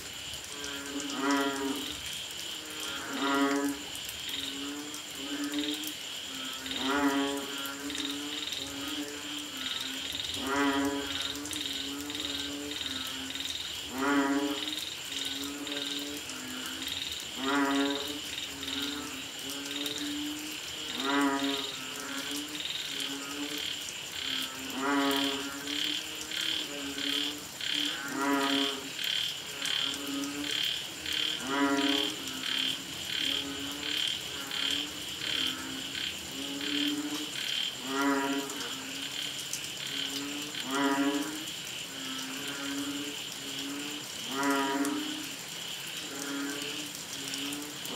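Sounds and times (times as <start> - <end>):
frogs deep moaning calls: 0.0 - 47.9.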